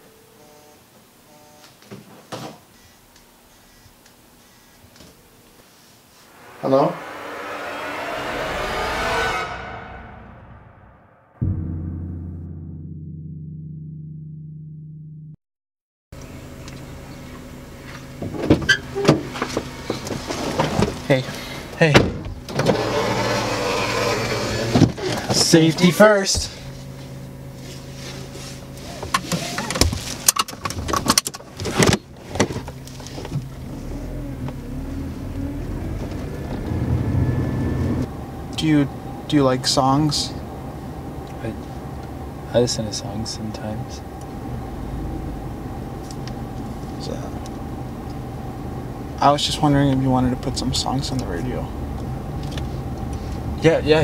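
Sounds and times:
car engine and road noise: 6.1 - 11.3, 16.2 - 54.0
whoosh riser: 6.2 - 12.5.

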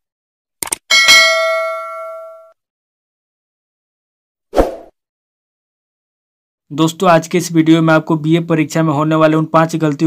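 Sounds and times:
bright bell ding: 0.9 - 2.6.

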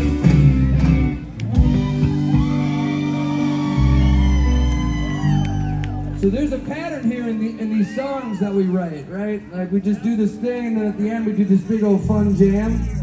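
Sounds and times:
live rock band: 0.0 - 6.2.

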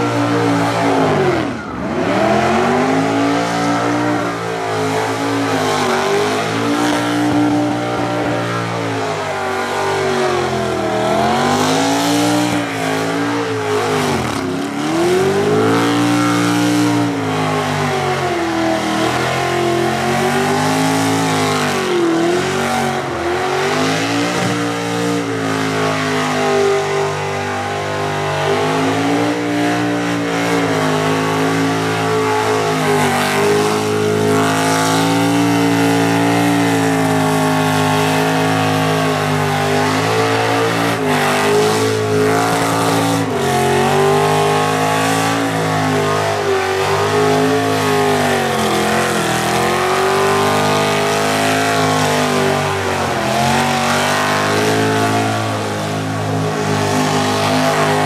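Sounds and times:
car engine revving high: 0.0 - 58.0.

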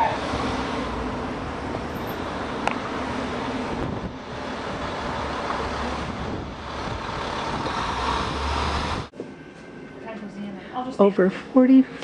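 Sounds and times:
road traffic rumble: 0.0 - 9.1
vehicle passing: 0.2 - 9.1
wind on microphone: 3.6 - 9.1.

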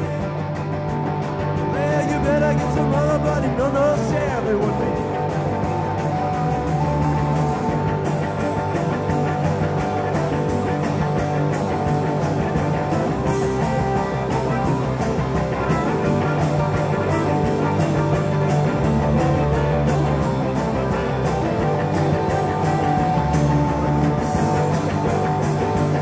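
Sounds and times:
drum beat: 0.0 - 26.0
electric guitars: 0.0 - 26.0
harmonica playing lead: 0.0 - 26.0.

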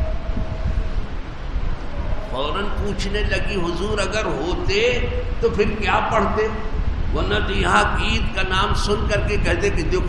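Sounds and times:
low rumble: 0.0 - 9.1
faint hum: 0.0 - 10.0.

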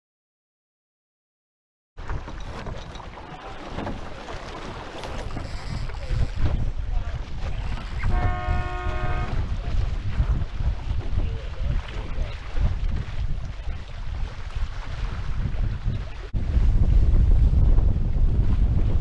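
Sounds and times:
water rushing along hulls: 2.0 - 19.0
wind buffeting microphone: 2.0 - 19.0.

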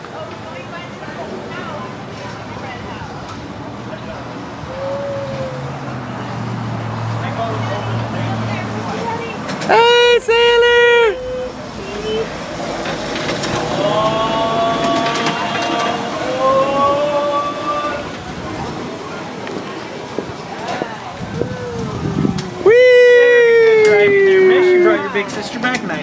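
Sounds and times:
horn toots: 9.7 - 12.4.

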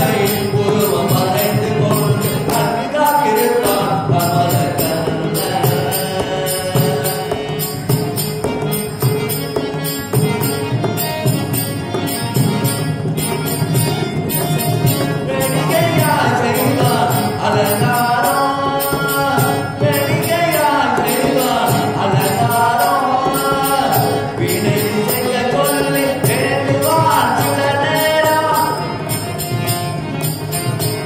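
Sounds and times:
man singing chant-like melody: 0.0 - 8.0, 15.2 - 29.0
hand drum: 0.0 - 31.0
harmonium notes: 0.0 - 31.0.

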